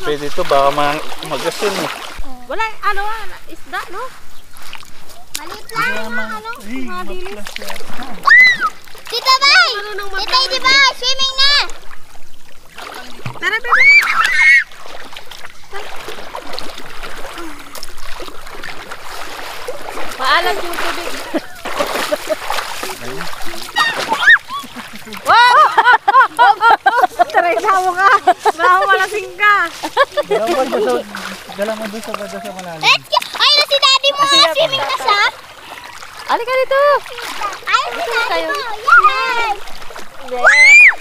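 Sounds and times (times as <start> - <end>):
sea water splashing around legs: 0.0 - 41.0
children shouting and squealing: 8.2 - 11.7, 13.5 - 14.8, 23.5 - 26.6, 32.2 - 35.4, 36.8 - 41.0.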